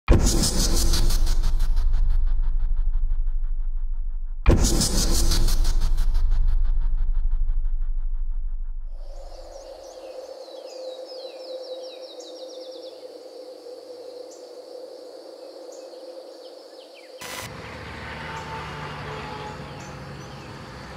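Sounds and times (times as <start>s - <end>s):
pulsing low rumble: 0.1s - 9.7s
insect-like hum: 9.0s - 20.9s
birds chirping: 15.5s - 20.9s.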